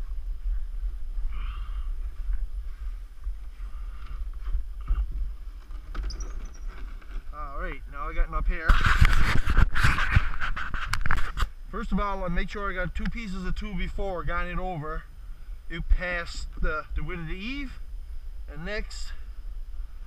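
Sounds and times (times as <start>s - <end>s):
wind buffeting microphone: 0.0s - 11.7s.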